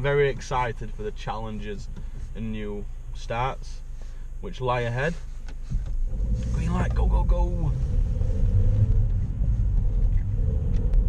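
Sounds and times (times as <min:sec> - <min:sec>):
car engine and road rumble: 0:00.0 - 0:11.0
faint steady hum: 0:00.0 - 0:11.0.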